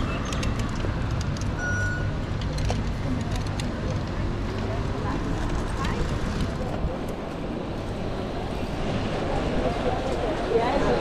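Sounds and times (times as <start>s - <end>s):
city street traffic: 0.0s - 11.0s
short electronic beep: 1.6s - 2.2s.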